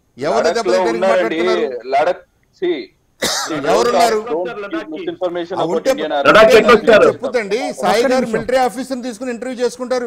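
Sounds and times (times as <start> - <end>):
man talking: 0.2 - 10.0
man clearing his throat: 3.2 - 3.8.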